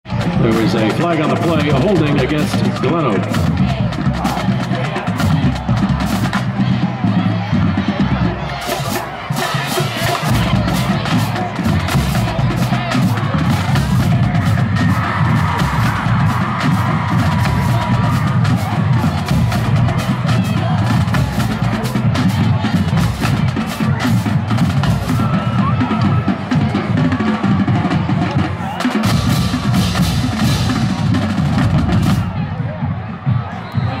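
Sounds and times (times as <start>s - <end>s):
crowd noise: 0.0s - 34.0s
snare and bass drums beating: 0.1s - 34.0s.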